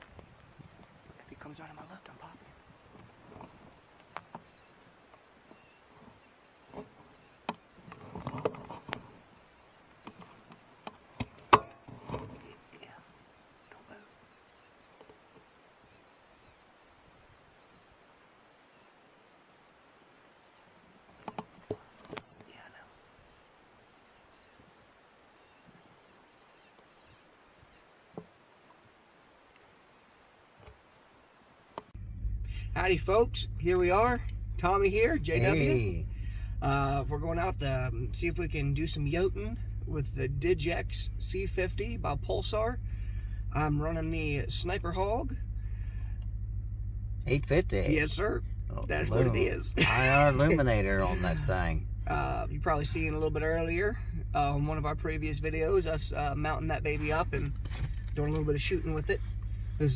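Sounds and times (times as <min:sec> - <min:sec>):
sharp clicks and knocks: 0:05.1 - 0:09.2, 0:09.9 - 0:12.6, 0:21.2 - 0:22.6
low whispered voices: 0:35.2 - 0:42.0, 0:47.3 - 0:48.1, 0:48.7 - 0:53.1.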